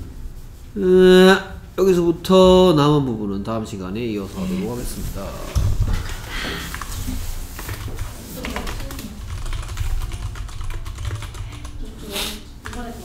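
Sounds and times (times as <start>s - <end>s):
computer keyboard typing: 6.6s - 7.0s, 7.6s - 11.9s, 12.6s - 13.0s.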